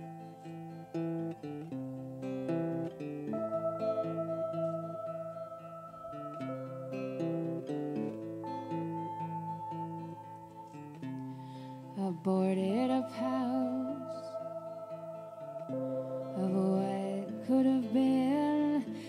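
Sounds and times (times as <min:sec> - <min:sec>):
acoustic guitar picking: 0:00.0 - 0:19.0
held keyboard notes: 0:00.0 - 0:19.0.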